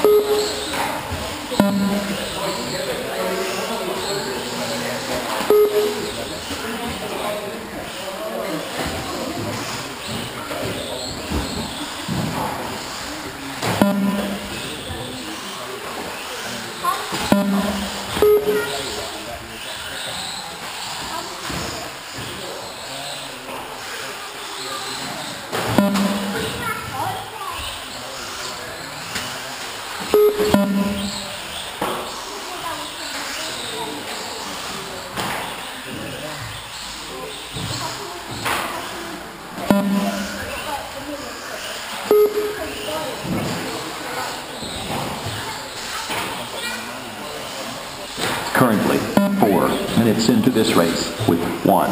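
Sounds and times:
people talking: 0.0 - 51.9
voices echoing in a hall: 0.0 - 51.9.

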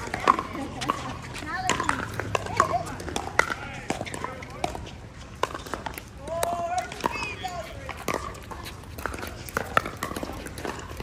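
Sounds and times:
people's voices: 0.0 - 5.4, 6.0 - 11.0
paddles hitting plastic ball: 0.0 - 11.0.

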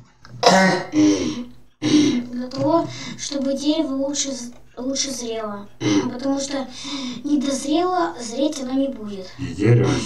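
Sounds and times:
person coughing: 0.4 - 2.2, 5.8 - 6.2.

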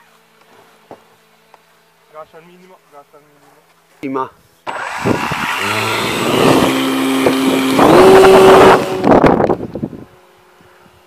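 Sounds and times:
model glider electric motor whining: 4.7 - 10.6.

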